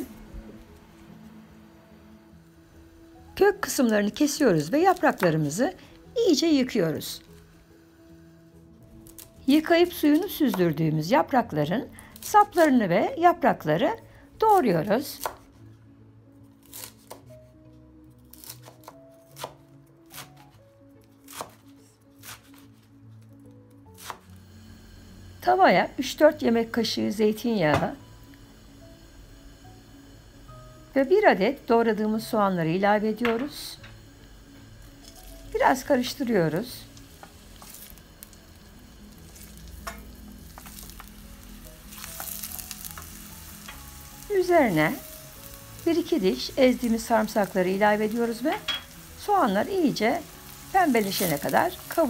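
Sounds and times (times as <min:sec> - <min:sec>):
onion sizzling in a pan: 0:01.6 - 0:08.0, 0:08.9 - 0:15.5, 0:16.6 - 0:17.3, 0:23.8 - 0:52.0
knife chopping on wooden board: 0:21.3 - 0:22.7.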